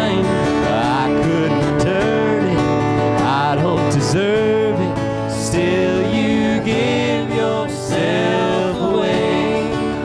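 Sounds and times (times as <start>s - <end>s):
worship band playing: 0.0s - 10.0s.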